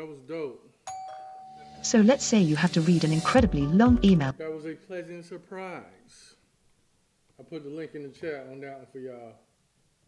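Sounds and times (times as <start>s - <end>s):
electronic notification chime: 0.9s - 4.3s
person speaking: 1.8s - 4.4s.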